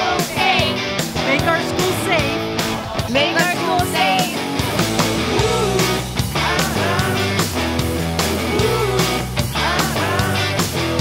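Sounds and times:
rock music with singing: 0.0 - 11.0.

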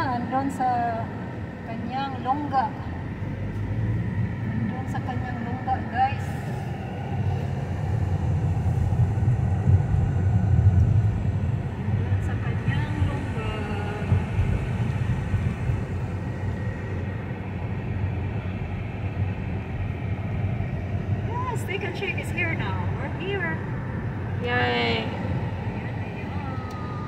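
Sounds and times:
car cabin road noise: 0.0 - 27.0.

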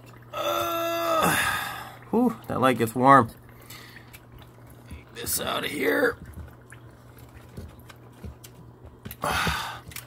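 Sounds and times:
low steady hum: 0.0 - 10.0
water dripping: 0.0 - 10.0.

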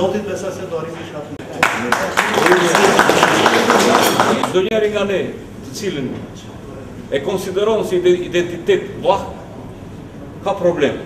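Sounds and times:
crowd clapping: 1.4 - 4.6.

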